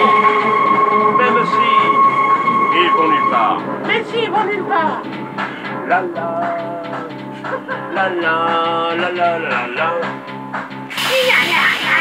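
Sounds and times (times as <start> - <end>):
high whine: 0.0 - 6.0
metro train running: 0.0 - 6.4.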